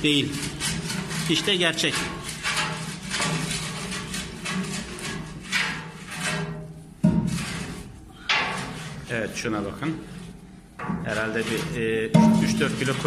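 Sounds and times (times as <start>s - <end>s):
metal rod scraping soot: 0.0s - 13.0s
sharp knock: 12.2s - 12.8s.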